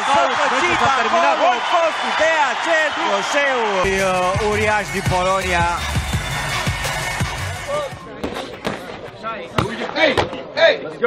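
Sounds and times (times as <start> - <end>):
crowd noise: 0.0 - 11.0
music: 3.8 - 8.1.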